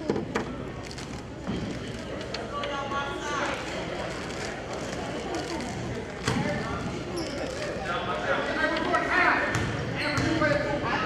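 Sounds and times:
voices in gym: 0.0 - 11.0.

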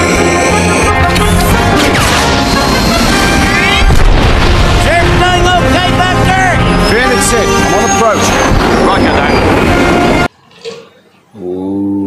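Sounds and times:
loud soundtrack music: 0.0 - 10.3.

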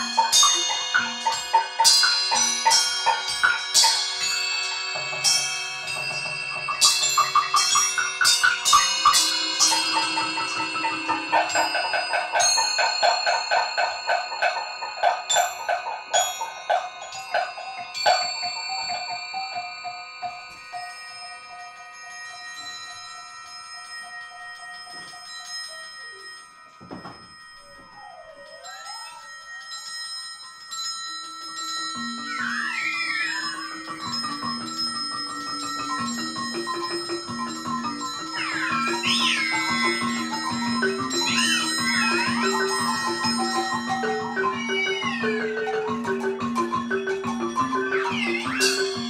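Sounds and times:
mallet percussion notes: 0.0 - 49.0
wavering sliding pitches: 31.6 - 49.0.

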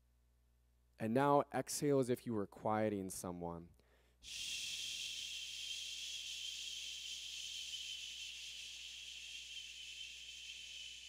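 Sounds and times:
man exhaling shhh through teeth: 4.2 - 11.0.

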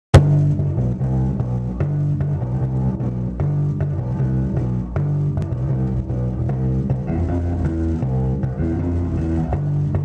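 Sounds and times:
bass guitar plucked notes: 0.1 - 10.0.

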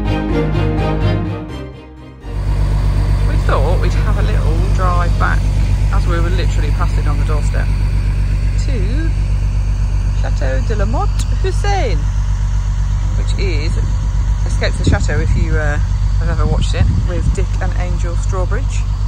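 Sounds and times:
background music: 0.0 - 5.4
truck diesel engine rumbling: 0.0 - 19.0
faint voices: 3.2 - 9.4, 10.0 - 19.0.

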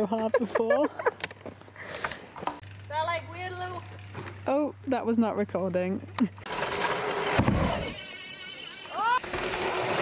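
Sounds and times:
person laughing: 0.0 - 1.2
bike tyres rushing on dirt: 6.5 - 10.0.

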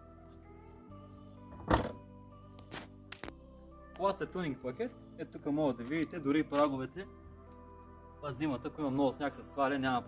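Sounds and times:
background music: 0.0 - 10.0
car tailgate shutting: 1.6 - 2.0.

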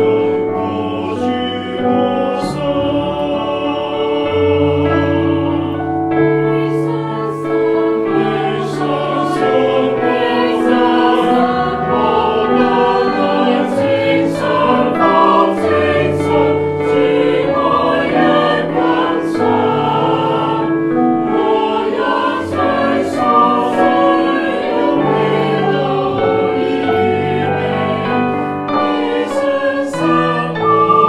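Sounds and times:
mixed choir singing: 0.0 - 31.0.

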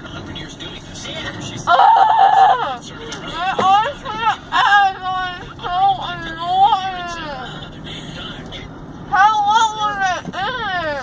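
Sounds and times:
car cabin road noise: 0.0 - 11.0.

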